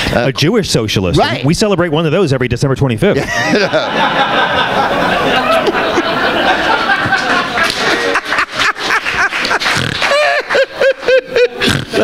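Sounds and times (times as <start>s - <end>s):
man laughing into a microphone: 3.2s - 12.0s.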